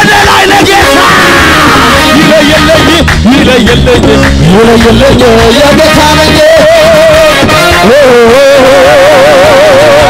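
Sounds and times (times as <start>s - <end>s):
live worship music with singing: 0.0s - 10.0s
long high yell: 0.8s - 2.2s.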